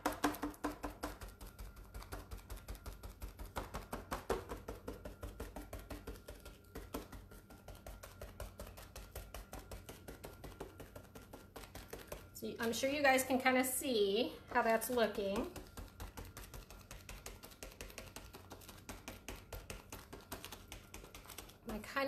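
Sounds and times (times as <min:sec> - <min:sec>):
paint dabbing on glass: 0:00.0 - 0:22.0.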